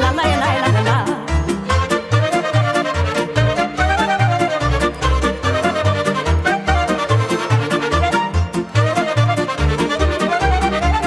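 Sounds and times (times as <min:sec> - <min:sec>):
violin melody: 0:00.0 - 0:11.0.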